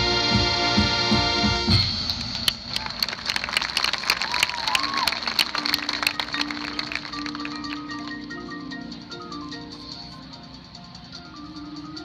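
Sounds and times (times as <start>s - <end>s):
marching band music: 0.0s - 12.0s
mallet notes: 5.6s - 10.4s.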